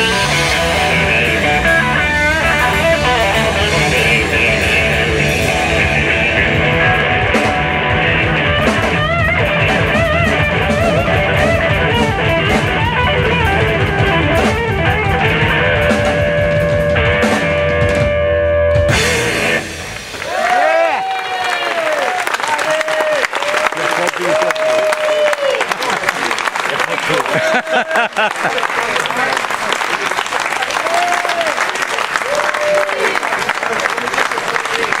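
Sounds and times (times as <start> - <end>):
blues band chord: 0.0 - 20.3
audience applauding and cheering: 19.7 - 35.0
people calling out: 27.2 - 28.2.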